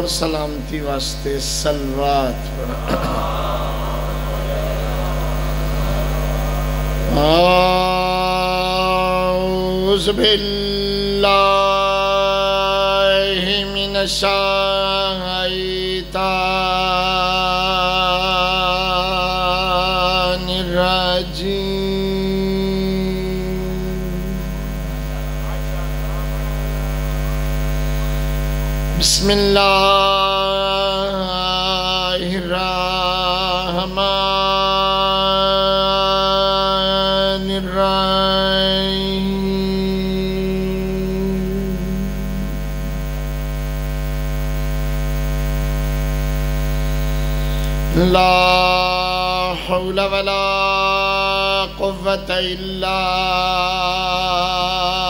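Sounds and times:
electrical mains hum: 0.0s - 55.0s
steady higher tone: 1.6s - 12.6s, 18.6s - 31.0s, 32.8s - 49.3s
faint voice: 2.6s - 7.2s, 24.5s - 28.2s.

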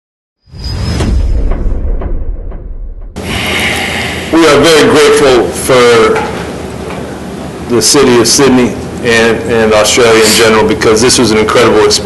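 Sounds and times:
whoosh: 0.5s - 4.4s
deep rumble: 0.5s - 5.6s.

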